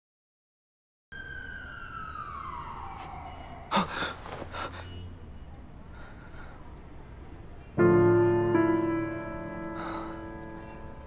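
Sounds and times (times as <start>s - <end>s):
siren-like tone sliding down: 1.1s - 3.7s
man gasping and breathing heavily: 3.7s - 4.9s.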